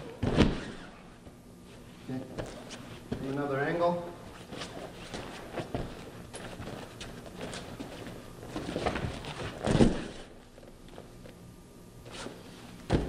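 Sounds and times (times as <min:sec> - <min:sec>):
bodies thudding on mat: 0:00.1 - 0:00.9, 0:04.4 - 0:10.4, 0:12.2 - 0:13.0
feet shuffling on foam mats: 0:04.2 - 0:11.0.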